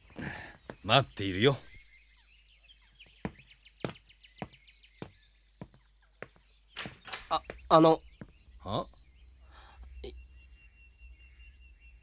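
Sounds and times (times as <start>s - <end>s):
birdsong chirping: 0.0s - 12.0s
footsteps on wooden floor: 3.0s - 8.4s.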